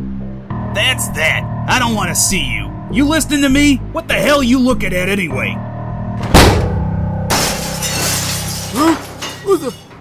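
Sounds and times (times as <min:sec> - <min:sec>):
music bed: 0:00.0 - 0:10.0
glass shattering: 0:07.3 - 0:10.0.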